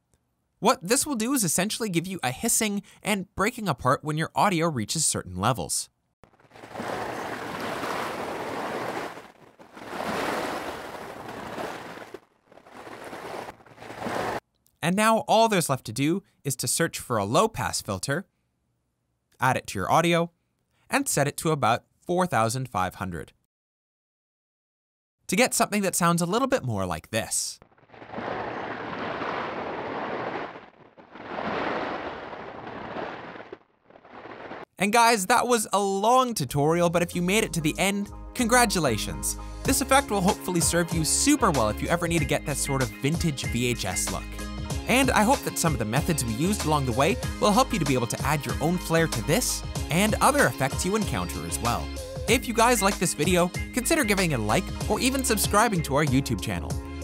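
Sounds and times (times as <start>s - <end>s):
distorted ocean surf: 6.2s - 14.4s, 27.7s - 34.6s.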